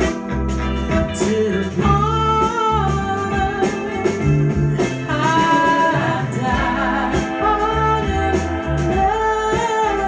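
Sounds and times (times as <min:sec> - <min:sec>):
bass line: 0:00.0 - 0:10.0.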